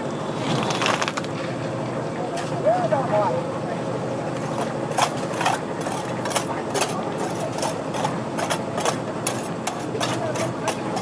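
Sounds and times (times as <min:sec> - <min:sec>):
engine drone: 0:00.0 - 0:11.0
trowel scraping wet concrete: 0:04.4 - 0:11.0.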